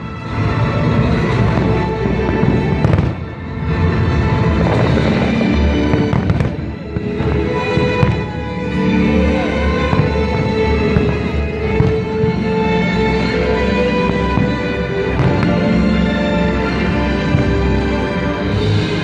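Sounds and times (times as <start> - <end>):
music playing: 0.0 - 19.0
fireworks bursting: 1.1 - 19.0.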